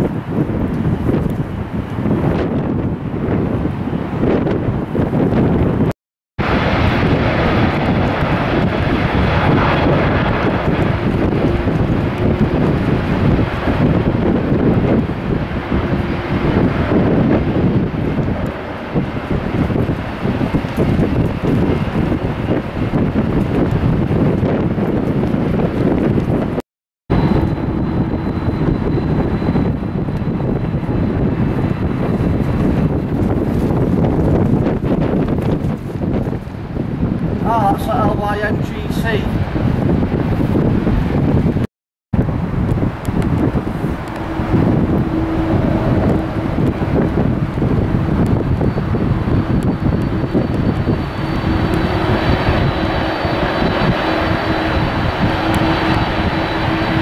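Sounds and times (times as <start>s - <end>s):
jet engines at takeoff: 0.0s - 57.0s
wind buffeting microphone: 0.0s - 57.0s
thin steady whine: 27.1s - 33.0s, 42.7s - 57.0s.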